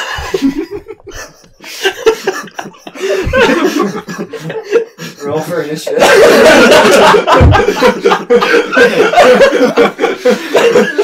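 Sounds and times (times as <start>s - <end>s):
breathy laughter: 0.0s - 5.2s, 5.9s - 11.0s.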